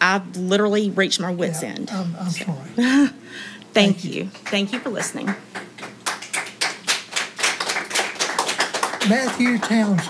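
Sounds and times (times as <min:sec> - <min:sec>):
audience applauding: 0:04.4 - 0:10.0.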